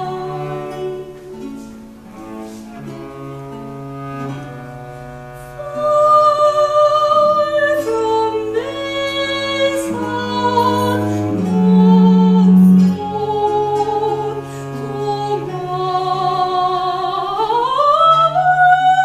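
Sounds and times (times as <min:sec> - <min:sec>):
lute: 0:00.0 - 0:19.0
soprano singing: 0:00.0 - 0:19.0
viola da gamba: 0:00.0 - 0:19.0
violins: 0:00.0 - 0:19.0.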